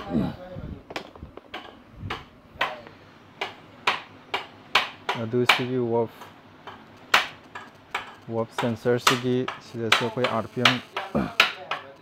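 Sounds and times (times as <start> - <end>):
low workshop background: 0.0 - 12.0.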